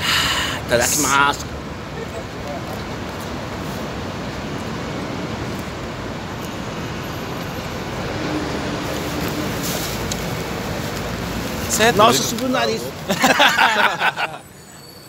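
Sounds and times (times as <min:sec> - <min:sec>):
city street traffic: 0:00.0 - 0:15.0
man speaking: 0:11.7 - 0:13.1.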